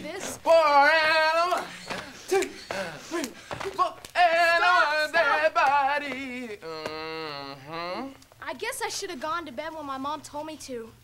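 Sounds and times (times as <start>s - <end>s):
person vocalizing: 1.5s - 3.4s, 6.4s - 8.2s.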